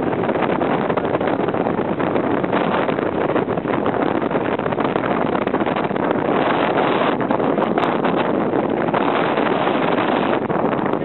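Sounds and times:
wind rushing on microphone: 0.0s - 11.0s.

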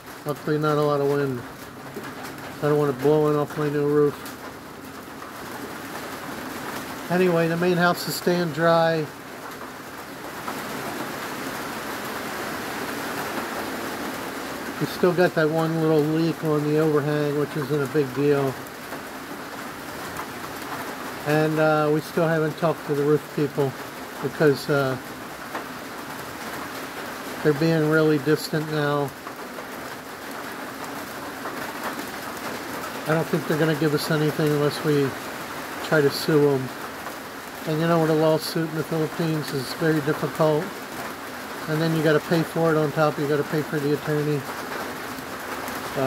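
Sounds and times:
rain on a metal roof: 0.0s - 46.0s.

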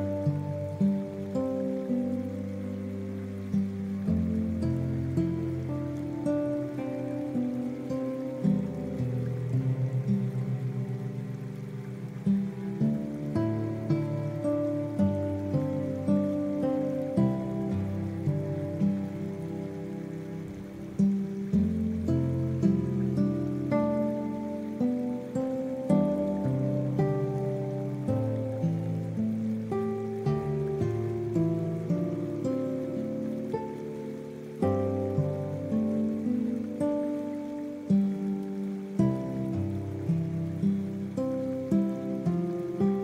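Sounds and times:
faint rain: 0.0s - 43.0s
slow gentle guitar music: 0.0s - 43.0s.

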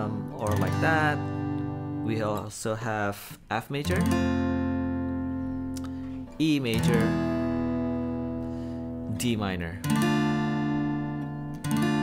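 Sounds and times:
acoustic guitar chord strummed: 0.0s - 2.6s, 3.8s - 12.0s.

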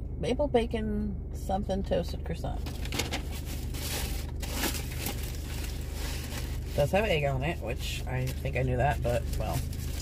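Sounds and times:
paper wrapper crinkling: 2.7s - 7.1s, 8.2s - 10.0s.

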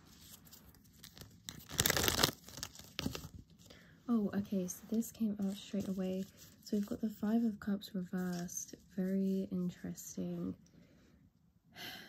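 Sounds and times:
cards being shuffled: 0.1s - 3.7s.

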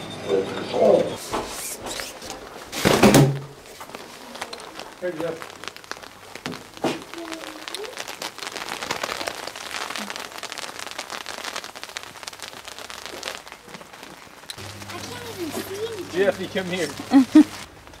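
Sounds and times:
rain ticking on an umbrella: 1.3s - 18.0s.

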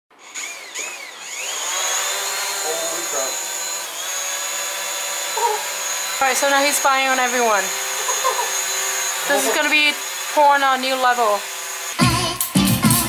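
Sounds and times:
drone propellers whining: 0.2s - 13.0s.

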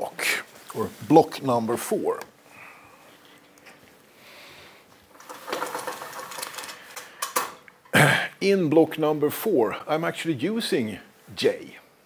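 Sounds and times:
spring roller rattling clicks: 5.1s - 7.6s.

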